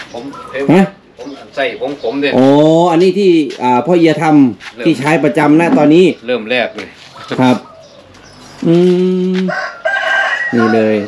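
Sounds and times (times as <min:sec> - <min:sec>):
rooster crowing: 0:09.5 - 0:11.0.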